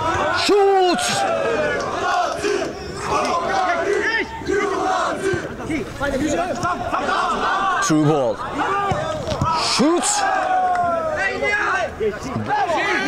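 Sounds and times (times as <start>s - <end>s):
men shouting: 0.0s - 13.0s.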